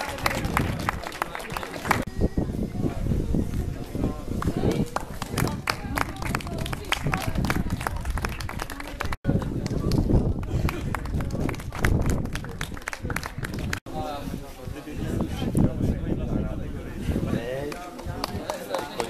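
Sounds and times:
crowd clapping: 0:00.0 - 0:02.1, 0:04.4 - 0:13.9, 0:17.7 - 0:19.0.

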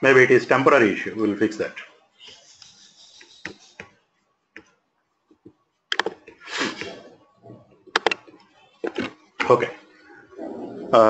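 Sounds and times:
computer mouse clicks: 0:05.3 - 0:06.4, 0:07.9 - 0:09.2.

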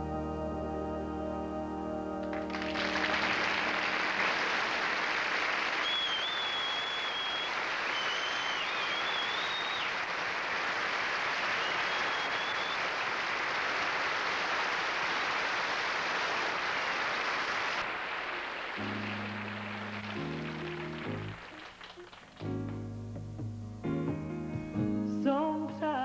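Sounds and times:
audience applauding: 0:02.2 - 0:22.8
high whistles: 0:05.2 - 0:10.1, 0:11.4 - 0:13.0.

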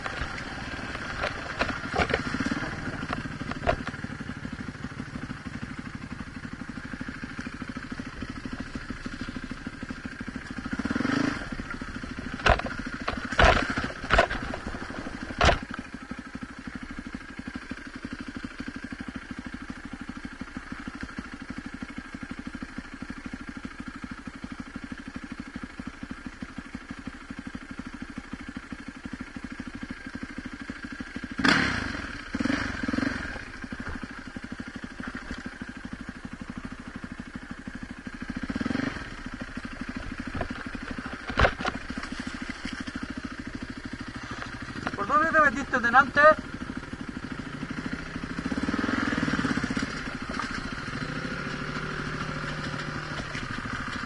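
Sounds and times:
dirt bike engine idling: 0:00.0 - 0:54.0.

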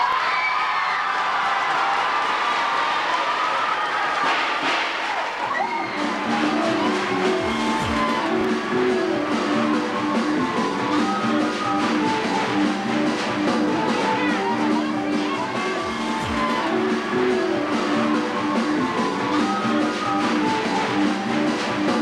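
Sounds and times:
crowd clapping and cheering: 0:00.0 - 0:22.0
guitar-led music: 0:05.9 - 0:22.0.

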